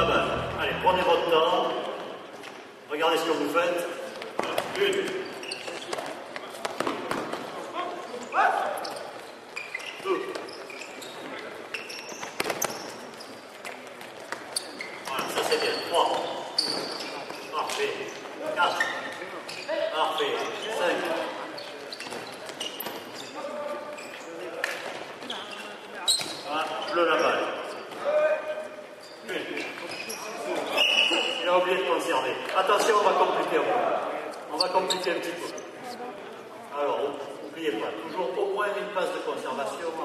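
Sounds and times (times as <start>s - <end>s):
players calling and shouting: 0.0s - 1.4s
sports shoes squeaking on floor: 4.9s - 6.2s, 8.2s - 13.8s, 14.4s - 24.4s, 25.2s - 28.0s, 29.0s - 31.4s, 34.3s - 36.0s.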